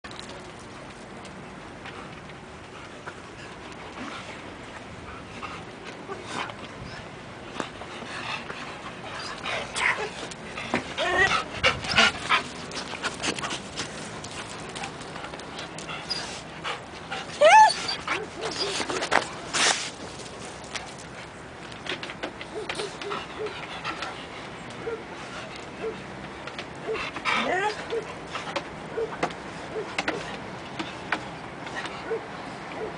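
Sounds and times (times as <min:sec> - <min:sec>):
dogs panting and whimpering: 0:02.0 - 0:19.5, 0:22.2 - 0:32.9
dog whining: 0:17.4 - 0:18.9
scuffling movement: 0:18.1 - 0:20.9.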